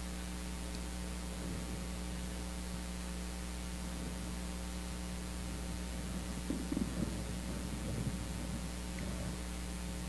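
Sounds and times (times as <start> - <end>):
electrical mains hum and hiss: 0.0 - 10.0
faint low rumbles: 0.0 - 10.0.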